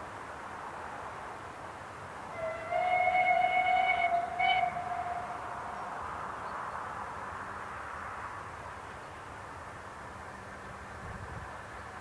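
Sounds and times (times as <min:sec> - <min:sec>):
steam whistle blast: 0:02.3 - 0:05.7
train rushing: 0:02.3 - 0:07.9.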